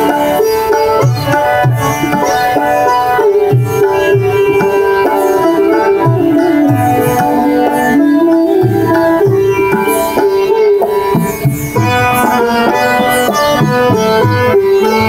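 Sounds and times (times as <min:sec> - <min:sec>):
bamboo flute: 0:00.0 - 0:15.0
harmonium: 0:00.0 - 0:15.0
sitar: 0:00.0 - 0:15.0
tabla rhythm: 0:00.0 - 0:15.0.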